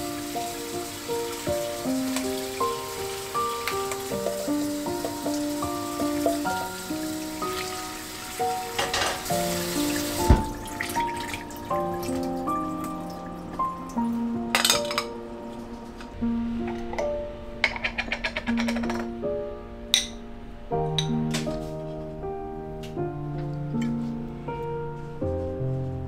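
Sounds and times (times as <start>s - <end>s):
tap water running into sink: 0.0s - 13.7s
background music: 0.0s - 26.0s
knock: 10.3s - 10.6s.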